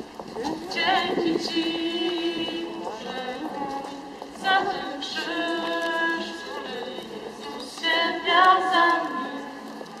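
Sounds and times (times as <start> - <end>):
crowd singing a hymn: 0.0 - 10.0.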